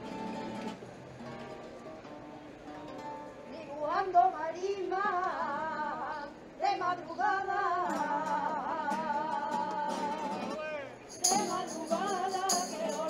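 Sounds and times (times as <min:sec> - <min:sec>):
tambourine jingling: 0:11.0 - 0:13.0
person singing melismatic melody: 0:11.1 - 0:13.0.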